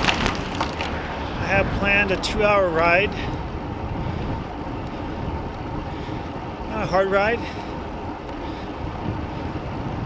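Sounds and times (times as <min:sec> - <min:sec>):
wind and road rumble: 0:00.0 - 0:10.0.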